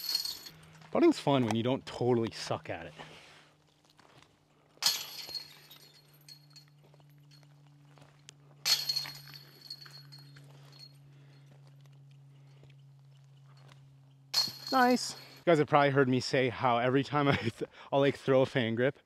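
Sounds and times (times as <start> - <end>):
discs striking basket chains: 0.0 - 0.8, 4.8 - 11.6, 13.4 - 15.5.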